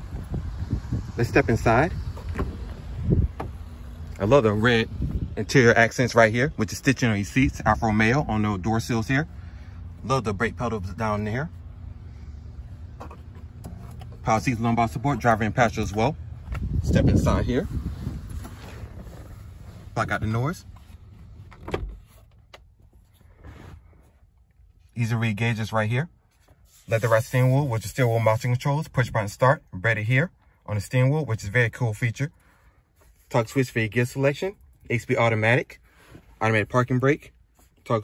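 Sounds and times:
low rumble: 0:00.0 - 0:20.3.

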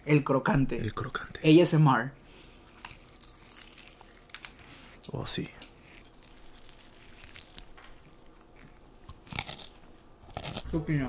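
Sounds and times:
crunching and chewing fried chicken: 0:02.4 - 0:10.8.

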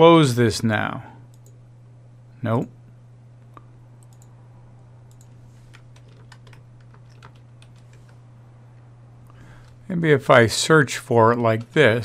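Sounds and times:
low electrical hum: 0:00.0 - 0:12.0
keyboard and mouse clicking: 0:04.0 - 0:04.3, 0:05.1 - 0:08.2.

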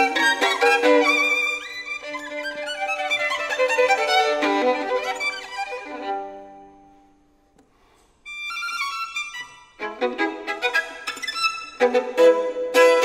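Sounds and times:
solo violin playing: 0:00.0 - 0:07.2, 0:08.3 - 0:13.0.

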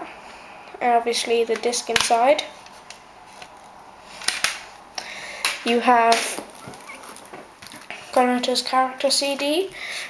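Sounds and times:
soft rustling of objects: 0:00.0 - 0:10.0.

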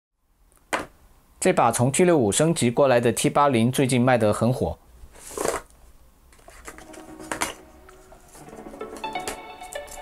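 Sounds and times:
paper rustling: 0:05.1 - 0:05.7, 0:06.3 - 0:10.0.

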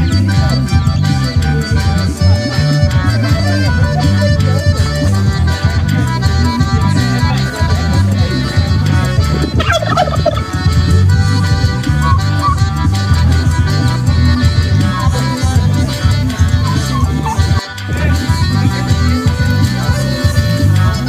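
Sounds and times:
music with steady bass: 0:00.0 - 0:21.0
turkey gobbling: 0:08.0 - 0:10.9, 0:16.3 - 0:21.0.

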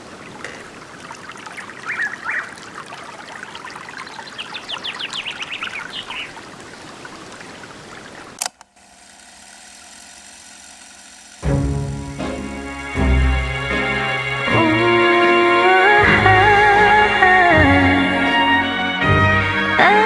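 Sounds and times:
water trickling and pouring: 0:00.0 - 0:08.4
loud song music: 0:11.5 - 0:20.0.

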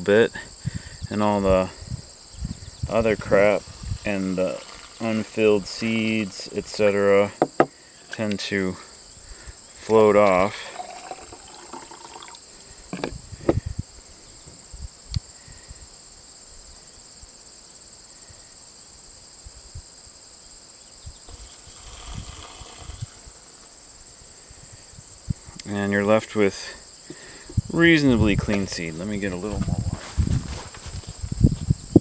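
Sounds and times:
crickets chirring: 0:00.0 - 0:32.0
water pouring into plastic tub: 0:04.1 - 0:05.3, 0:10.2 - 0:12.4, 0:21.3 - 0:23.3
light knocks: 0:07.4 - 0:07.7.

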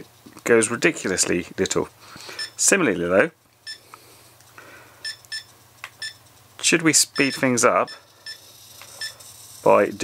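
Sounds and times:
short high electronic beeps: 0:07.2 - 0:08.4.

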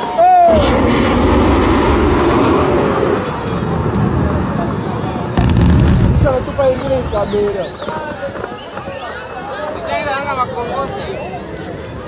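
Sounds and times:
people's voices: 0:00.0 - 0:12.0
warplane roaring overhead: 0:00.5 - 0:07.6.

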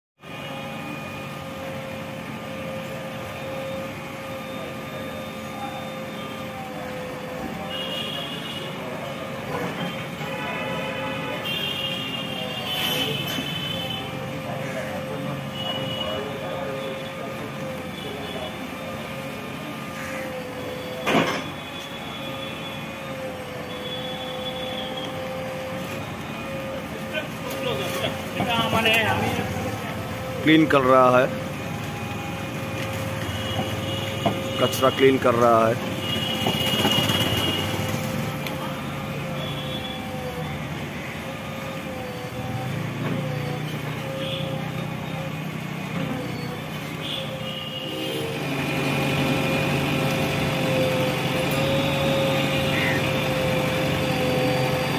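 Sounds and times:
steady whining tones: 0:00.2 - 0:07.9, 0:13.6 - 0:54.9
diesel engine under load: 0:00.2 - 0:54.9.

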